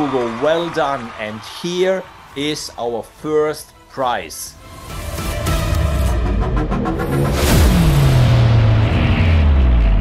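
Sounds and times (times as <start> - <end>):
deep sustained bass: 5.6 - 10.0.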